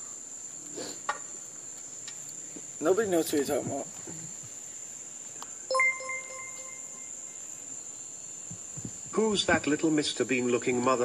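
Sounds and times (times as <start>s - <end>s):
crickets trilling: 0.0s - 11.0s
short electronic chime: 5.7s - 7.2s.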